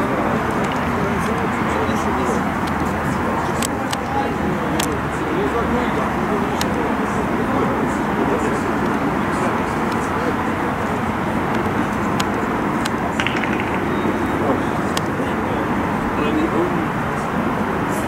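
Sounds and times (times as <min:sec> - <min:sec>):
distant voices: 0:00.0 - 0:18.0
steady rush of noise: 0:00.0 - 0:18.0.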